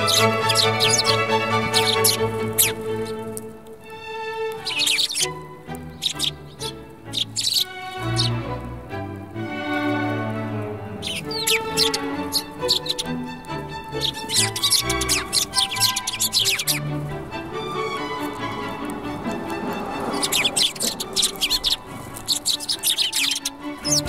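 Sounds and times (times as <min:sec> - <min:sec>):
background music: 0:00.0 - 0:24.0
sparrows chirping: 0:00.0 - 0:24.0.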